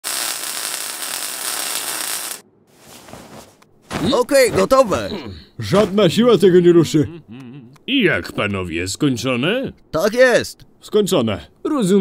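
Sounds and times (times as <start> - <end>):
welding gun hissing: 0.0 - 2.4.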